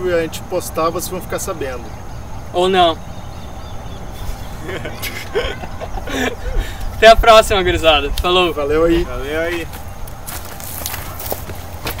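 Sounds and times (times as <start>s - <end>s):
steady low rumble: 0.0s - 12.0s
footsteps on dry dirt: 9.2s - 12.0s.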